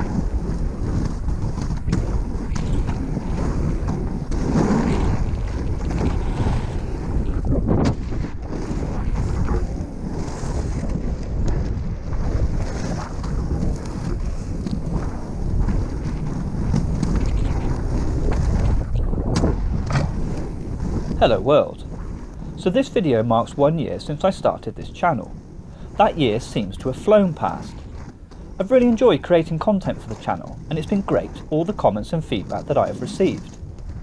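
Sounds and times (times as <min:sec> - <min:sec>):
skate wheels rolling on asphalt: 0:00.0 - 0:34.0
wind buffeting microphone: 0:00.0 - 0:34.0.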